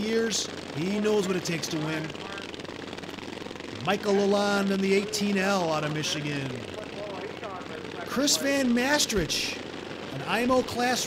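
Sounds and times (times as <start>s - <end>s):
racing lawn mower engines: 0.0s - 11.0s.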